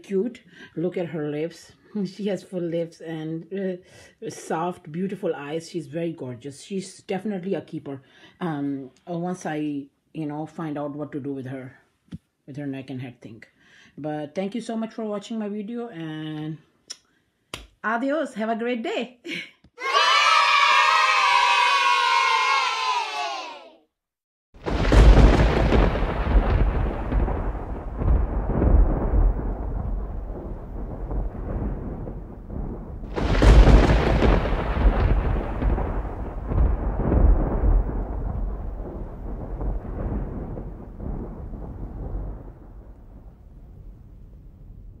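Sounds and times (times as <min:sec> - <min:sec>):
thunder-like rumble: 0:24.6 - 0:45.0.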